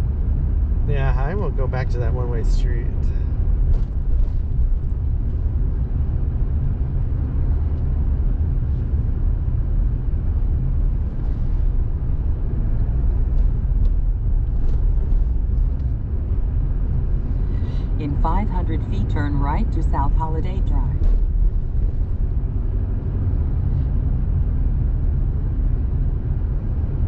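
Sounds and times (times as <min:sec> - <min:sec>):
car engine and tyres rumbling: 0:00.0 - 0:27.0.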